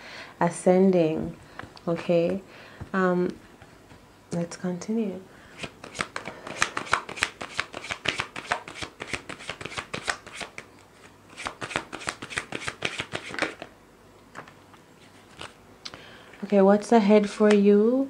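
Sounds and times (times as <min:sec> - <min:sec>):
cards being shuffled: 0:05.6 - 0:13.7, 0:15.2 - 0:15.6.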